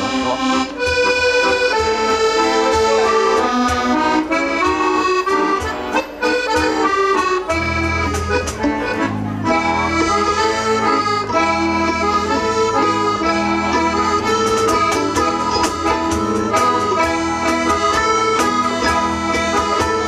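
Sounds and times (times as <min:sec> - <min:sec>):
accordion: 0:00.0 - 0:20.0
bass guitar line: 0:00.0 - 0:20.0
folk band playing: 0:00.0 - 0:20.0
percussion strokes: 0:13.0 - 0:20.0.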